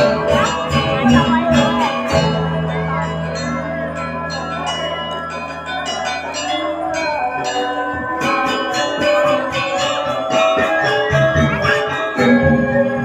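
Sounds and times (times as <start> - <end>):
gamelan metallophones and gongs: 0.0 - 13.0.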